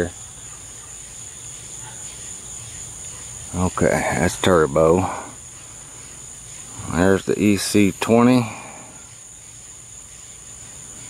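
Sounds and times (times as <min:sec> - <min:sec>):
crickets trilling: 0:00.0 - 0:11.0.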